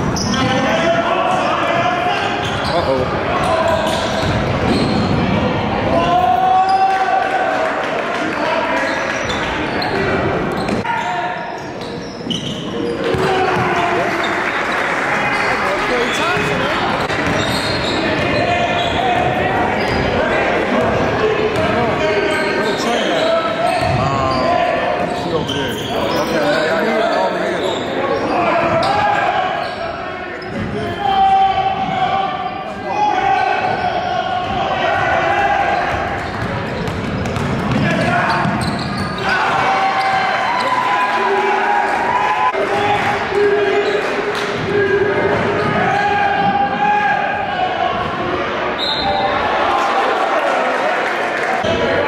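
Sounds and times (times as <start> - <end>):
shoe squeaks: 0.0 - 0.6, 2.4 - 5.1, 9.1 - 13.1, 15.4 - 19.2, 22.3 - 31.2, 38.1 - 39.4
voices of players and crowd: 0.0 - 52.0.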